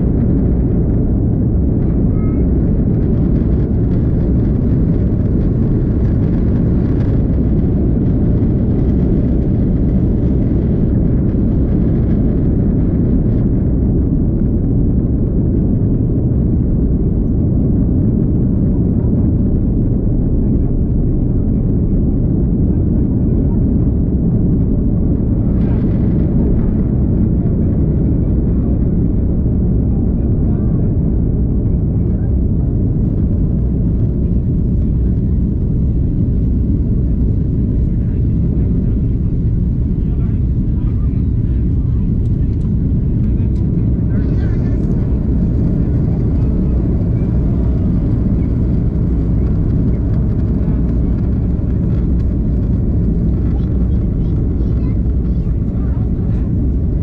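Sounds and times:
jet engines deep rumble: 0.0 - 57.0
wheels rumbling on runway: 0.0 - 57.0.

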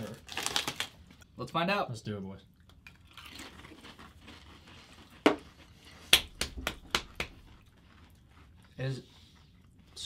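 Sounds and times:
chips crunching: 0.0 - 1.0, 2.9 - 6.0.

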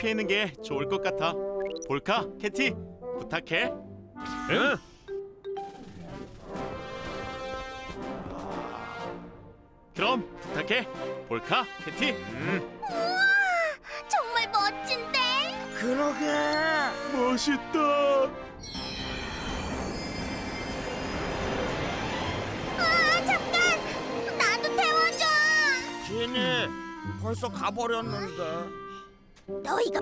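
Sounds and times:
faint high ringing: 18.6 - 21.8
steady rushing rumble: 19.5 - 24.7.

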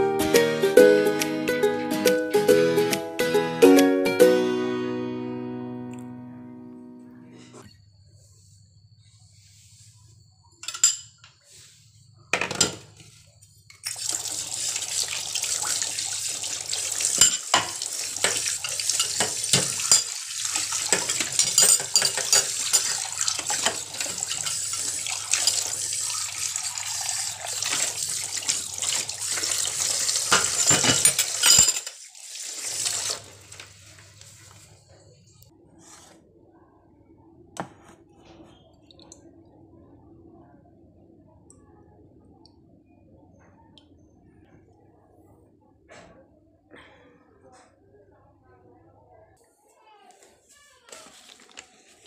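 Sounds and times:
metal clinking on metal: 10.6 - 11.3
tap water running into steel bowl: 13.8 - 34.6.

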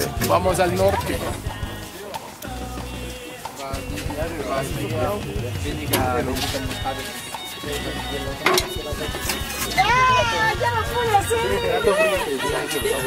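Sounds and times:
background music: 0.0 - 13.0
people's voices: 0.0 - 13.0.

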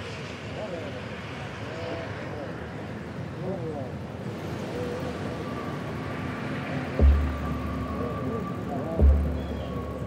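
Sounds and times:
traffic hum: 0.0 - 10.0
faint voices: 7.0 - 10.0.

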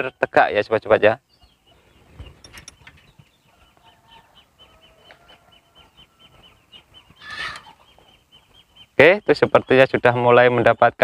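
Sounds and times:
high bird chirps: 1.2 - 11.0
bird squawk: 7.1 - 8.1.

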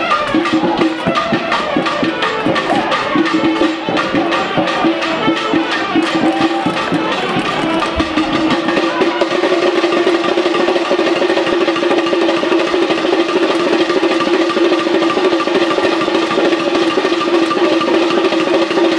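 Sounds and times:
drums playing dense rhythm: 0.0 - 18.9.

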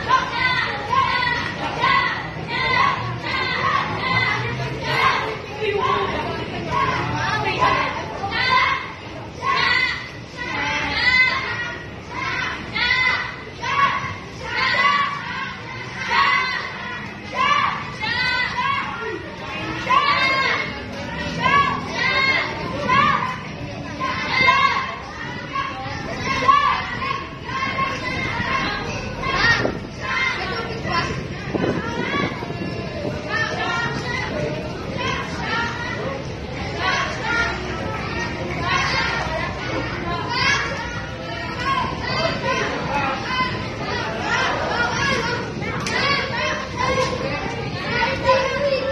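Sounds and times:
children shouting and chattering: 0.0 - 48.9.

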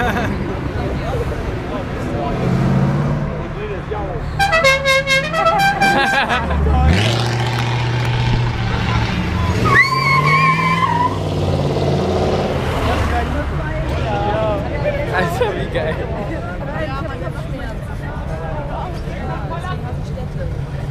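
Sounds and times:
car engine passing: 1.0 - 4.4, 5.8 - 14.8
car horn: 4.4 - 6.3.

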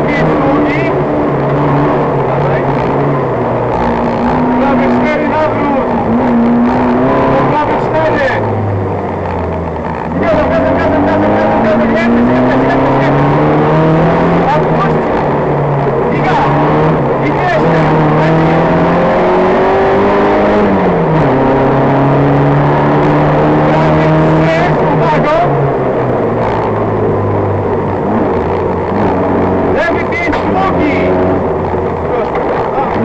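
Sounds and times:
car engine running hard: 0.0 - 33.0.

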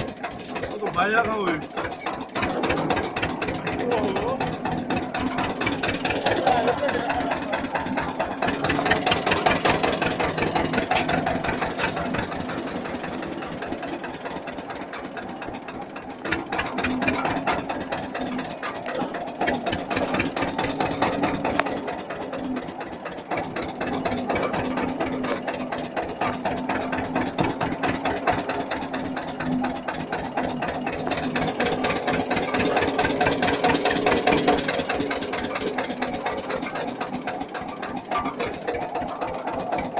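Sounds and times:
vehicle engine chugging: 0.0 - 39.9.

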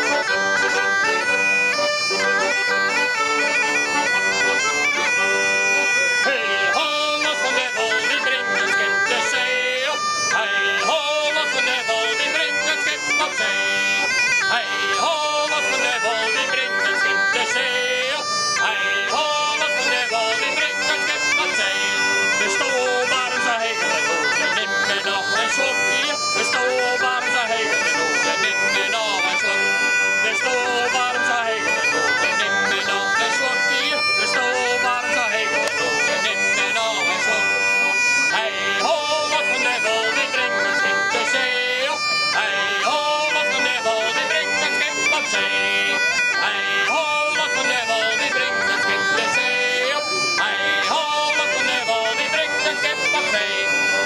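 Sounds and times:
button accordion playing chords: 0.0 - 54.0
person singing: 5.9 - 54.0.

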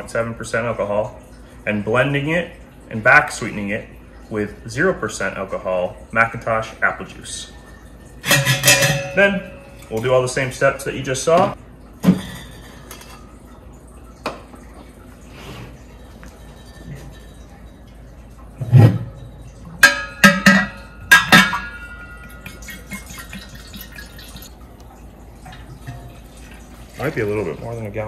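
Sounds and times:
liquid pouring into keg: 0.0 - 28.0
glass jug clinking on steel keg: 6.3 - 13.4, 15.6 - 28.0.

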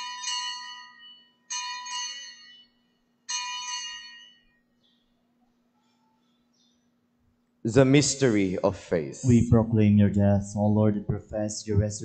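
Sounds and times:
bright altar bells ringing: 0.0 - 4.9.

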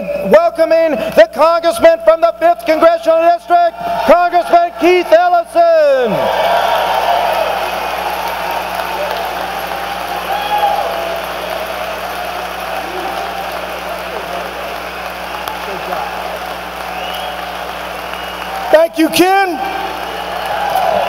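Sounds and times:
crowd applauding and cheering: 2.6 - 21.0.

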